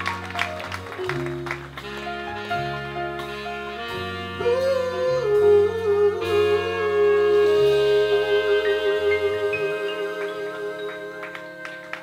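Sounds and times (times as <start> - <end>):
band sustained chords and bass: 0.0 - 12.0.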